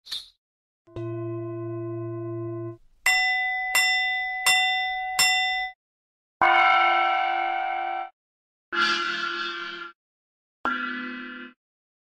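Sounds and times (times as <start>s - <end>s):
bell-like struck notes: 3.1s - 5.8s.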